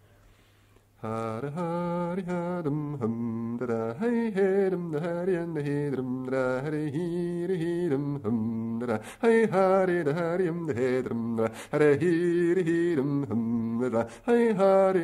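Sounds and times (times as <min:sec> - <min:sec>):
man singing wordless vocables: 0:01.0 - 0:15.0.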